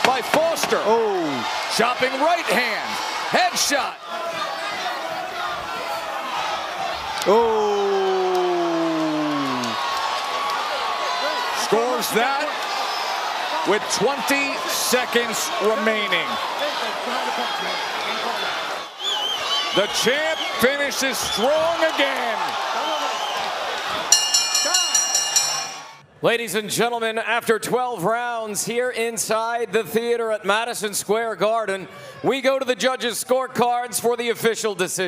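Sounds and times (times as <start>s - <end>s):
arena crowd noise: 0.0s - 35.0s
boxing ring bell struck rapidly: 24.1s - 26.0s.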